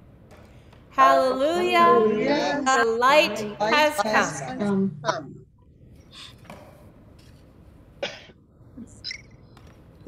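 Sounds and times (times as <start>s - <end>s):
low background noise: 0.0s - 10.0s
person coughing: 8.0s - 8.4s.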